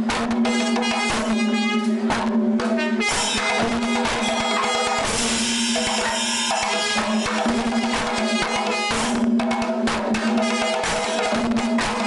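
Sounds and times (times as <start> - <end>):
cymbals ringing: 0.0 - 12.0
hourglass drums beaten fast: 2.1 - 12.0.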